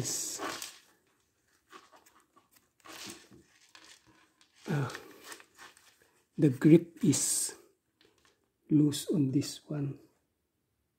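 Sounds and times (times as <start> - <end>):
person saying uh: 4.7 - 5.1.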